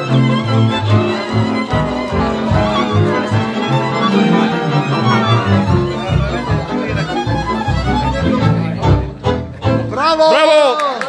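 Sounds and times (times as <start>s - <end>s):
fast string band music: 0.0s - 10.8s.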